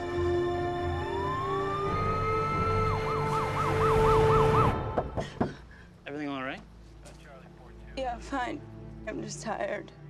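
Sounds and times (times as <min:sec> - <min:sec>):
ambulance siren wailing and yelping: 0:00.5 - 0:05.0.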